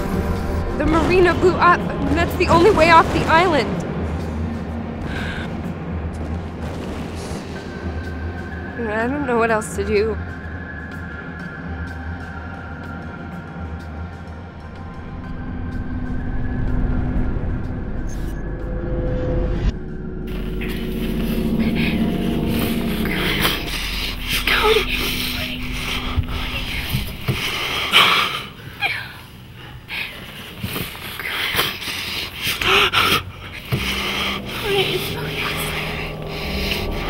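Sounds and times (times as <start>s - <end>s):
droning suspense music: 0.0s - 37.0s
heavy breathing and gasps: 21.2s - 37.0s.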